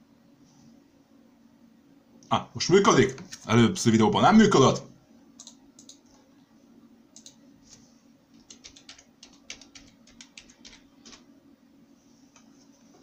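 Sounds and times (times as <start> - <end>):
faint steady hum: 0.0 - 13.0
computer keyboard typing: 5.4 - 6.0, 7.2 - 7.4, 8.3 - 11.2.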